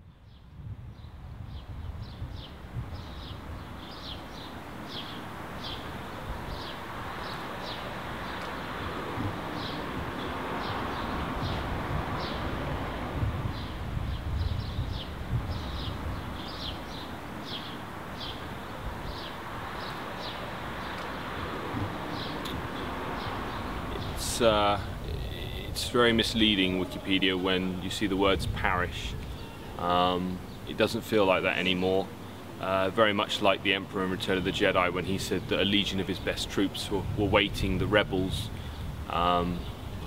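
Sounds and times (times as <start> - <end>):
bird chirping: 0.0 - 40.0
steady low rumble: 7.8 - 31.1.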